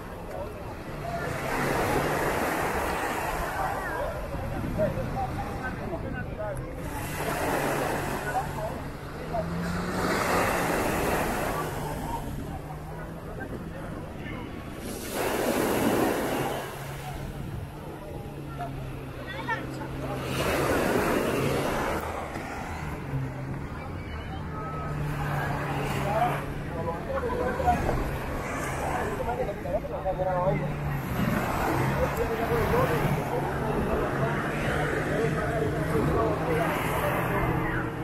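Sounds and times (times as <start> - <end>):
crowd chatter: 0.0 - 38.0
outboard engines idling: 0.0 - 38.0.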